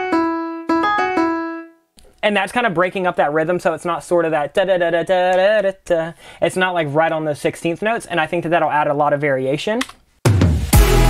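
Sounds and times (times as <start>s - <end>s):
piano melody: 0.0s - 1.9s.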